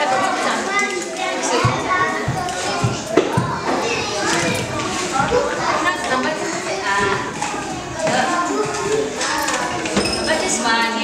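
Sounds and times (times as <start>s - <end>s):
children chattering and playing: 0.0s - 11.0s.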